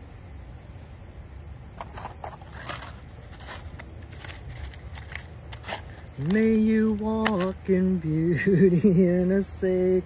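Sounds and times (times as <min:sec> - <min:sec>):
small box and objects handled: 0:01.8 - 0:07.6.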